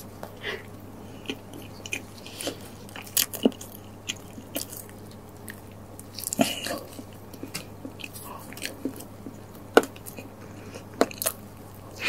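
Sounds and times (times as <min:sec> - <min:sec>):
chewing crispy fried food: 0:00.3 - 0:12.0.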